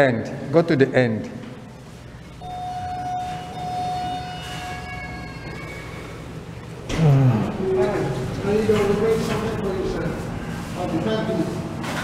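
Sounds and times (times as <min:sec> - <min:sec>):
low hum: 0:02.1 - 0:10.6
fainter higher tones: 0:02.1 - 0:10.7
steady high-pitched tone: 0:02.2 - 0:06.4.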